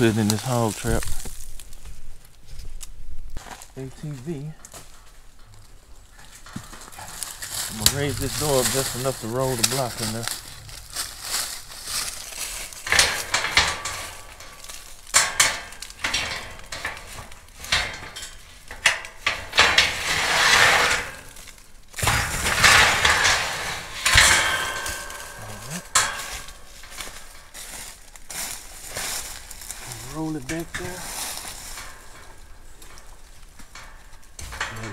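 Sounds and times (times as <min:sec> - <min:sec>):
rustling in dry leaves: 0:00.0 - 0:34.9
metal knocks: 0:06.2 - 0:34.9
metal trap clanking and rattling: 0:06.2 - 0:34.9.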